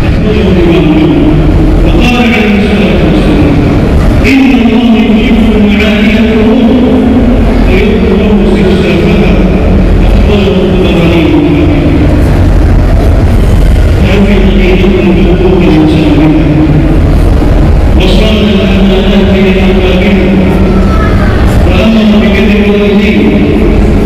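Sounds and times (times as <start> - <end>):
steady low rumble: 0.0 - 24.0.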